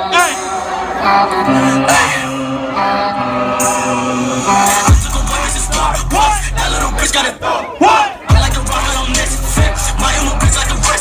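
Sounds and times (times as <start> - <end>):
concert crowd shouting: 0.0 - 11.0
loud hip-hop music: 0.0 - 11.0.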